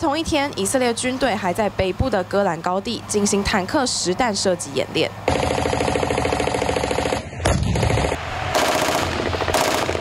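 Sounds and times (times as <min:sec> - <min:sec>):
heavier deeper gunfire burst: 0:05.3 - 0:10.0
machine-gun fire: 0:05.3 - 0:10.0.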